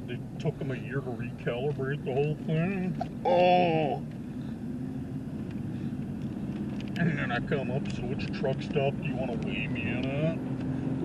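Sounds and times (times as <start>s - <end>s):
car driving hum from inside: 0.0s - 11.0s.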